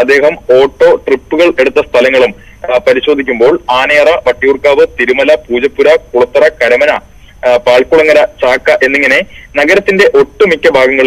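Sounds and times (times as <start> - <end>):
news reader speaking: 0.0 - 11.0.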